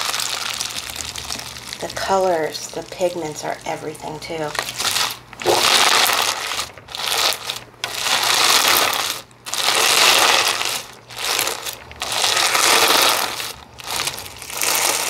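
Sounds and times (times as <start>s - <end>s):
rock pieces crunching in slime: 0.0s - 3.4s, 4.4s - 15.0s
slime squeezed by hand: 4.6s - 15.0s.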